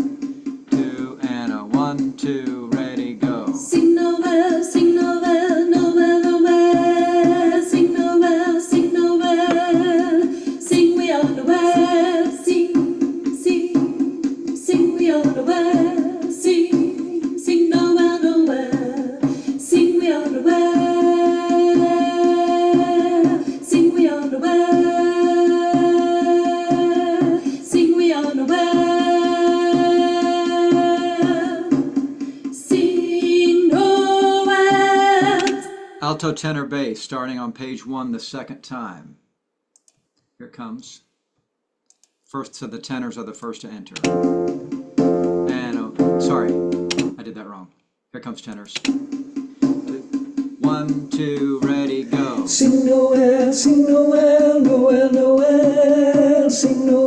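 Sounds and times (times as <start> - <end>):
person singing choir part: 0.7 - 4.0, 50.6 - 57.0
low steady accompaniment: 44.0 - 47.2.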